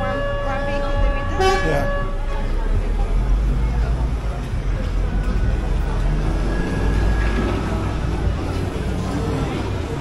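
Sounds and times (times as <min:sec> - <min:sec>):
low rumble of traffic: 0:00.0 - 0:10.0.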